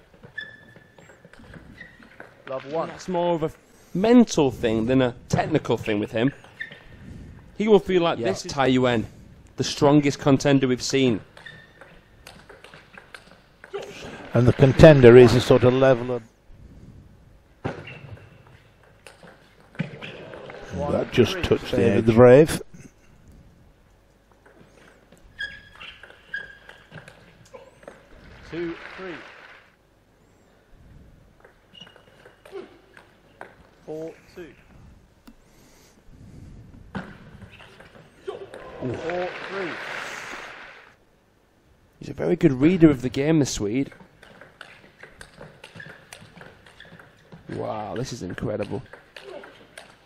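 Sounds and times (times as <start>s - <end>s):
shoes squeaking on floor: 0.0s - 3.0s, 5.8s - 7.1s, 10.4s - 14.0s, 17.6s - 20.5s, 24.5s - 28.6s, 31.4s - 33.7s, 37.0s - 38.6s, 44.0s - 48.2s
table tennis ball ticking: 43.8s - 50.0s.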